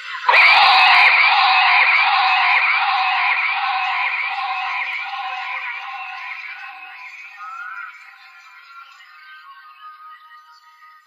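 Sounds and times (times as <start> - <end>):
chattering electronic texture: 0.4 - 7.7.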